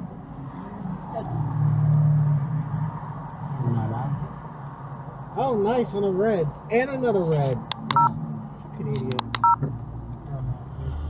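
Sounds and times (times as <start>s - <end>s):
car engine passing: 0.0s - 11.0s.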